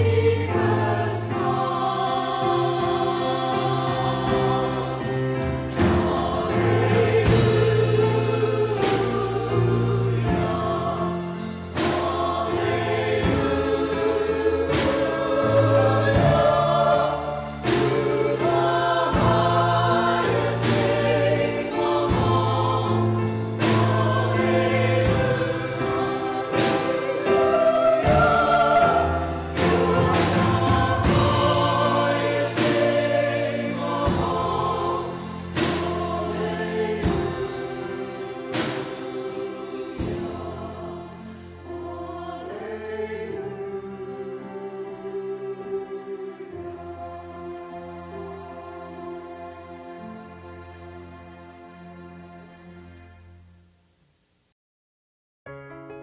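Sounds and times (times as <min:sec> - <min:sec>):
choir singing: 0:00.0 - 0:53.4
piano: 0:00.0 - 0:54.5, 0:55.4 - 0:56.0.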